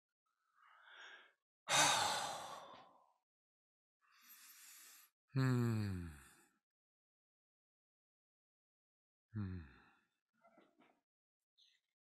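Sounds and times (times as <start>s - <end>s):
faint breath sounds: 4.0s - 6.4s
man sighing hmm: 5.4s - 6.2s.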